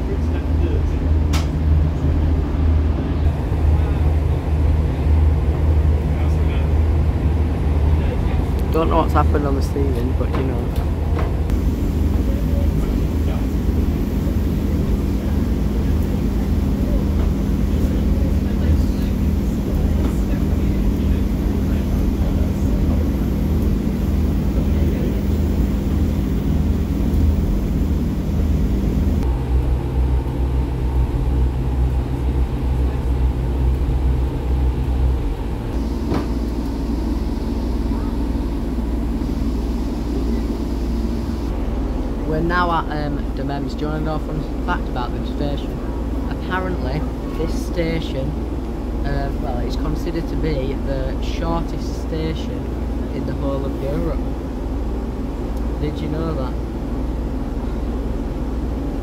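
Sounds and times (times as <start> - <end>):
train wheels rumbling on track: 0.0 - 51.8
diesel engine droning: 0.0 - 59.0.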